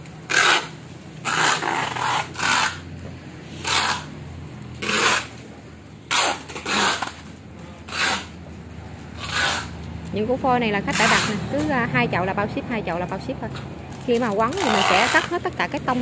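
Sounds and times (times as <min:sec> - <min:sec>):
packing tape ripping off roll: 0:00.3 - 0:02.8, 0:04.8 - 0:05.4, 0:06.1 - 0:07.3.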